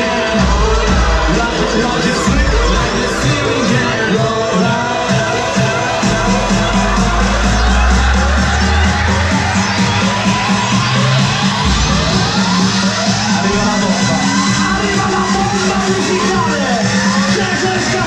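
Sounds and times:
electronic dance music: 0.0 - 18.0
rising sweep: 6.1 - 17.2.

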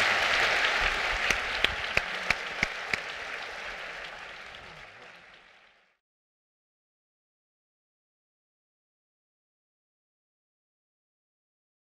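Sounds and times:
audience applauding: 0.0 - 6.0.

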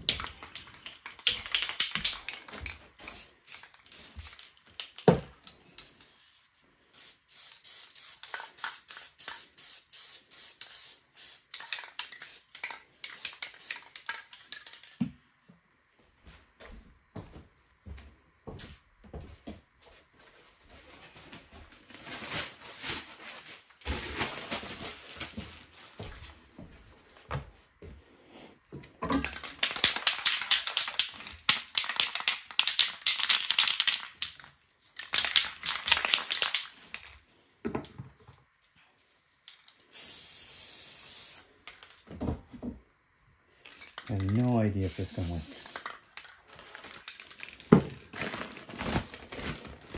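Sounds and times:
aerosol spray can hiss: 3.0 - 4.5, 6.2 - 14.0, 39.9 - 41.5, 44.8 - 45.9
newspaper crumpling: 20.3 - 26.3, 46.2 - 49.9.

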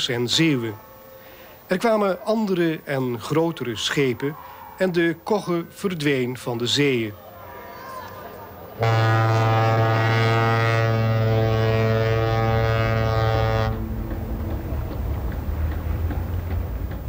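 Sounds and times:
ship's horn blast: 8.8 - 14.7.

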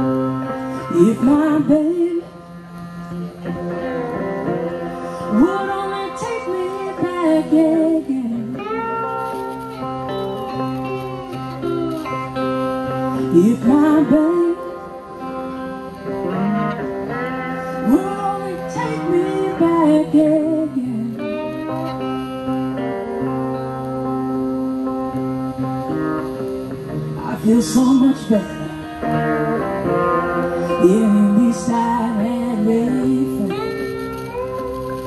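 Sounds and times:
cigar box guitars playing blues: 0.0 - 35.0.

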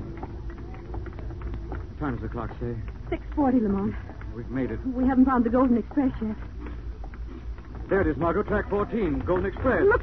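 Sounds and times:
hurried footsteps: 0.0 - 10.0.

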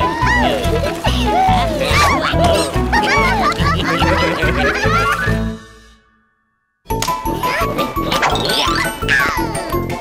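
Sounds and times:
upbeat cartoon music: 0.0 - 6.1, 6.9 - 10.0.

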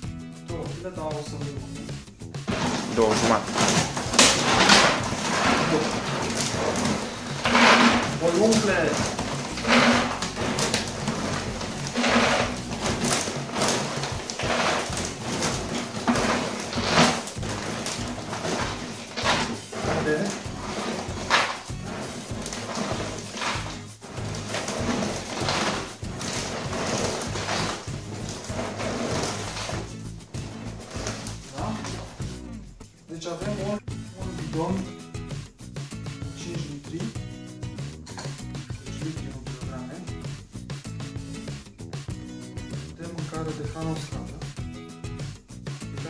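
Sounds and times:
background music: 0.0 - 46.0
dry kibble rattling into plastic bottle: 2.5 - 32.2.

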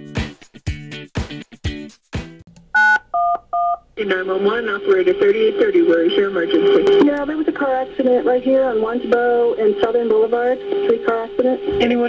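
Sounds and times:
touch-tone keypad beeps: 2.8 - 3.8.

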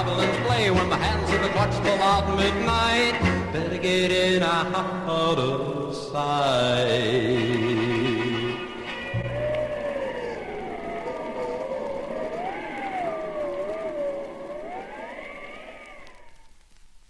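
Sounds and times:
eerie wailing tones: 7.3 - 16.6.

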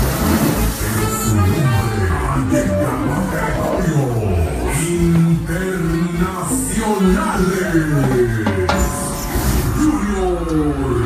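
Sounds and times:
live cumbia band: 0.0 - 9.8
moving bass line: 0.0 - 11.0.

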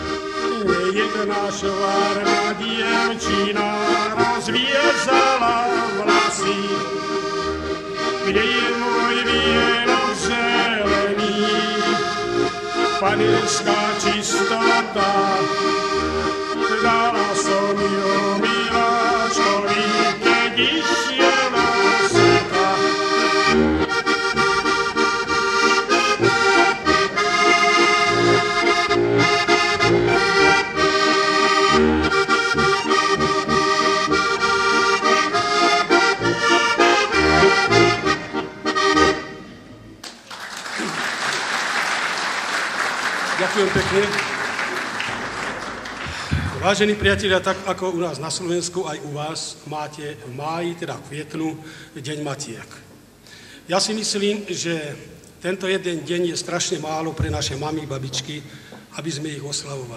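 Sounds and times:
button accordion folk tune: 0.0 - 40.0, 42.5 - 49.2
applause: 40.0 - 46.7.

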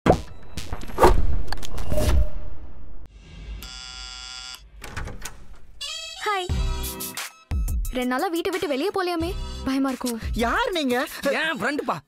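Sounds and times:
electric doorbell buzzing: 3.6 - 4.6.

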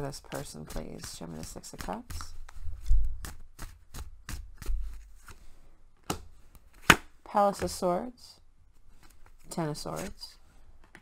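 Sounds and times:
cards being shuffled: 9.0 - 10.2.

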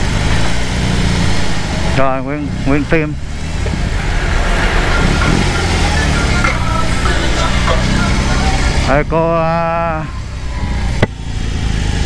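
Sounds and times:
motorcycle engine rumbling: 0.0 - 12.0.

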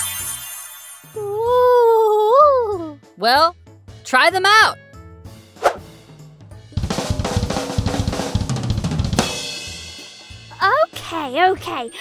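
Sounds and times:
drum kit fill: 5.8 - 10.5.

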